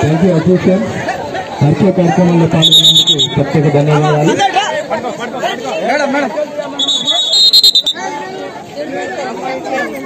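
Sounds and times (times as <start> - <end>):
crowd of people talking: 0.0 - 10.0.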